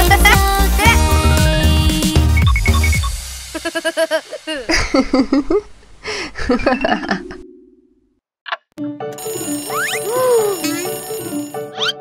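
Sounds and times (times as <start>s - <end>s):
children's song: 0.0s - 2.4s
cartoon child giggling: 3.6s - 5.7s.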